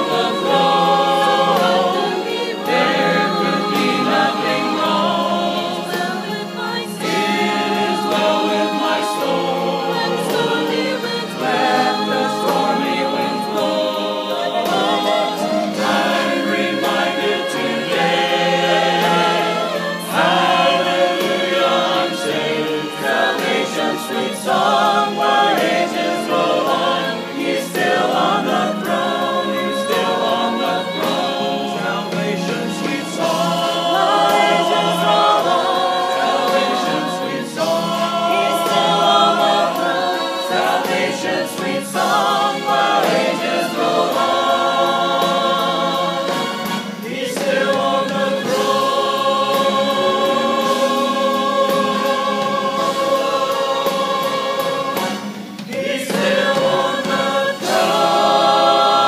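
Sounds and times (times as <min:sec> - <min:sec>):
mixed choir singing a hymn: 0:00.0 - 0:59.0.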